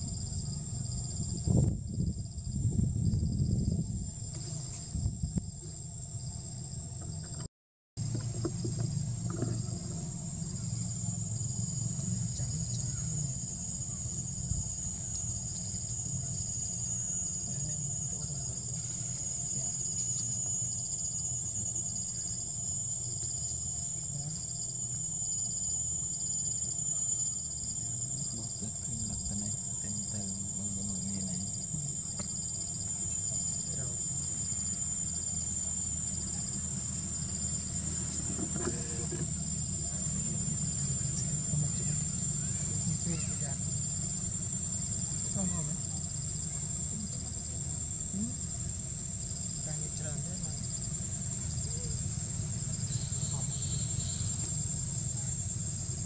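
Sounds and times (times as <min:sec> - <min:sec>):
low background rumble: 0:00.0 - 0:07.4
insects trilling high-pitched whine: 0:00.0 - 0:56.0
softer pulsing insect trill: 0:00.0 - 0:56.0.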